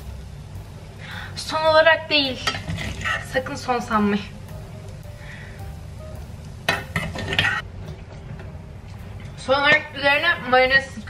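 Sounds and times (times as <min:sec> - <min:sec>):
low hum: 0:00.0 - 0:11.0
fork scraping plate and pot: 0:06.8 - 0:07.6.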